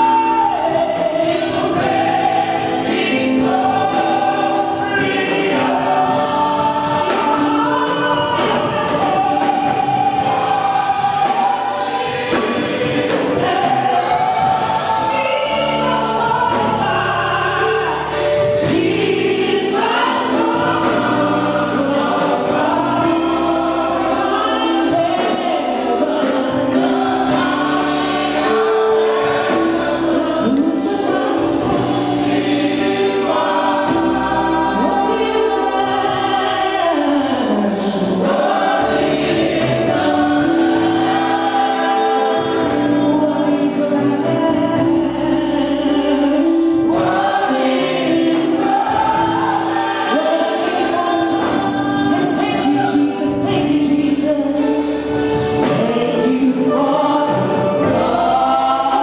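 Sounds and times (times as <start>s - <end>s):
woman singing into a microphone: 0.0s - 27.6s, 29.3s - 39.0s, 39.9s - 59.0s
congregation singing: 0.0s - 59.0s
musical accompaniment: 0.0s - 59.0s.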